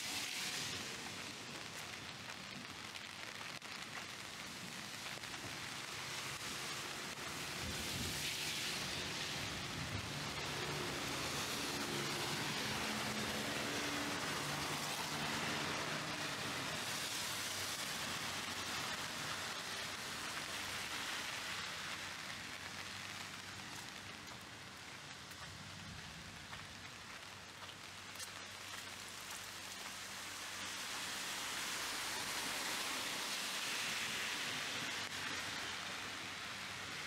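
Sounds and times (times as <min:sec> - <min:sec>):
heavy rain on a street: 0:00.0 - 0:37.0.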